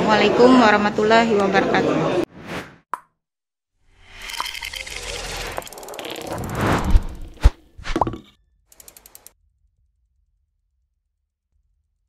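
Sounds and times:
rushing swell of noise: 5.3 - 7.5
rapid clicks: 8.8 - 9.3.

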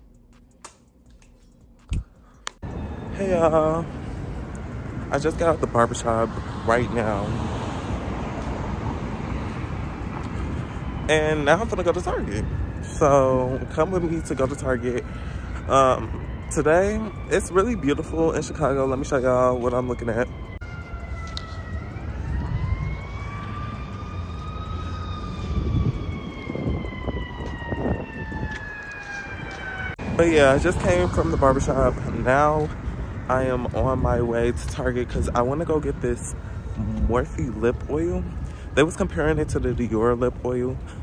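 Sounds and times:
city street traffic noise: 2.5 - 41.0
siren wailing: 2.6 - 41.0.

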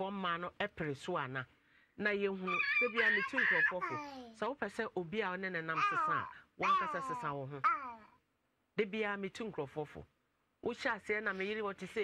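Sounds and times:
adult speaking: 0.0 - 12.0
toddler wailing: 2.5 - 4.4, 5.8 - 8.1.

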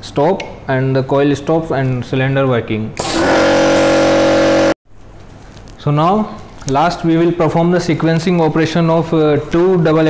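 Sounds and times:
steady buzz: 3.0 - 4.8.

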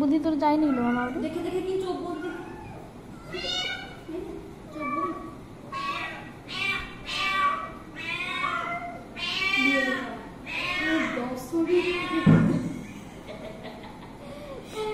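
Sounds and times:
cat meowing: 2.1 - 4.1, 4.7 - 12.5.

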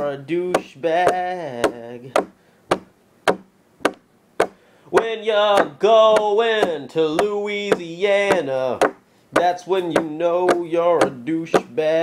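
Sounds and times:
short sharp knocks: 0.6 - 11.8.

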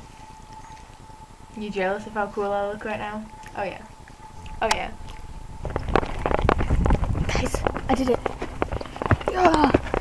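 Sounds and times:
wind buffeting microphone: 2.5 - 10.0
irregular knocks and crackles: 4.1 - 10.0.

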